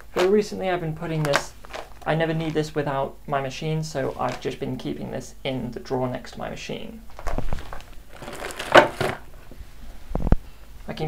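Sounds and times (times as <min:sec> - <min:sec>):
rustling crinkling handling noise: 0:01.0 - 0:02.7, 0:04.0 - 0:04.6, 0:07.0 - 0:09.6.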